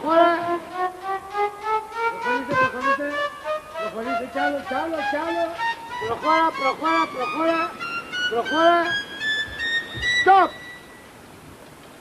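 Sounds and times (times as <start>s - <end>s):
background music: 0.0s - 11.0s
low steady hiss: 0.0s - 12.0s
man calling out: 2.3s - 9.0s, 10.2s - 10.6s.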